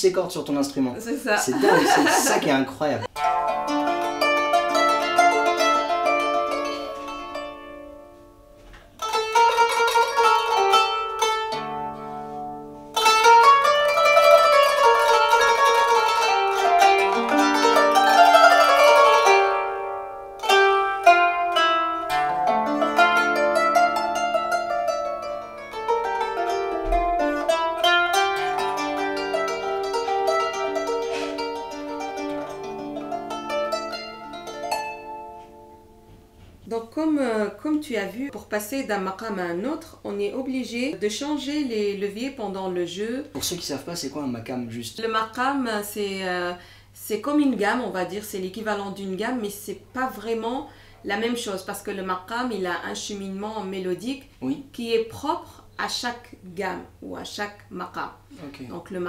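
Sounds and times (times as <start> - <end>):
plucked zither melody: 3.1 - 36.5.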